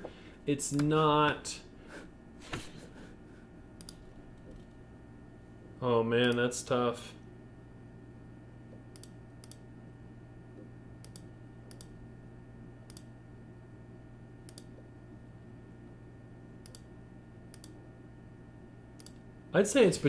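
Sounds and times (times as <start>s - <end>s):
low room hum: 0.0s - 20.0s
computer mouse clicking: 3.8s - 4.7s, 8.9s - 9.6s, 10.6s - 12.0s, 12.9s - 13.1s, 14.4s - 14.8s, 16.6s - 16.9s, 17.5s - 17.8s, 19.0s - 19.2s.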